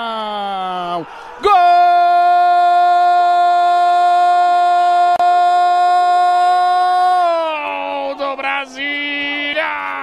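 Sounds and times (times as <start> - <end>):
commentator shouting goal: 0.0 - 10.0.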